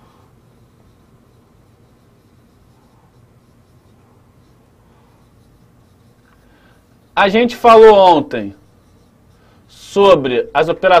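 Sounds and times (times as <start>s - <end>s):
low room hum: 0.0s - 11.0s
marker writing on whiteboard: 0.4s - 10.2s.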